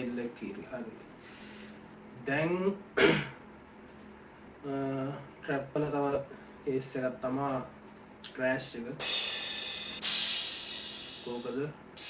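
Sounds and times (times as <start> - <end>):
man clearing throat: 3.0 - 3.4.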